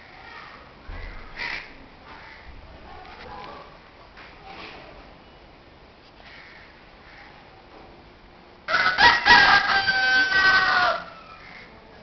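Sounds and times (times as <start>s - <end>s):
rooster crowing: 8.7s - 11.8s.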